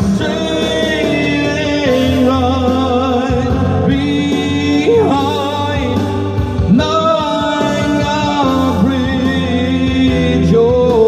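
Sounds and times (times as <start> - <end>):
man singing with vibrato: 0.0 - 11.0
recorded backing track: 0.0 - 11.0.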